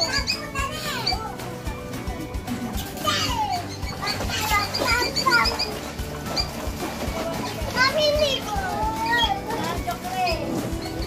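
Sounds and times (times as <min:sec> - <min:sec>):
children shouting and squealing: 0:00.0 - 0:01.6, 0:02.8 - 0:11.0
background music with steady beat: 0:00.0 - 0:11.0.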